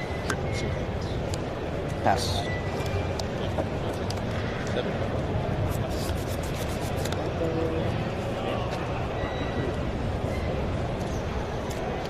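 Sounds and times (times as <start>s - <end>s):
murmur of crowd in hall: 0.0s - 12.0s
trading cards rubbing and flicking: 5.6s - 7.3s.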